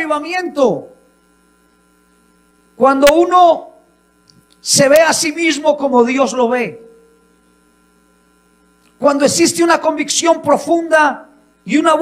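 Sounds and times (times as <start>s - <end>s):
man speaking into a microphone: 0.0s - 1.0s, 2.8s - 3.9s, 4.6s - 7.1s, 9.0s - 12.0s
electrical mains hum: 0.0s - 12.0s.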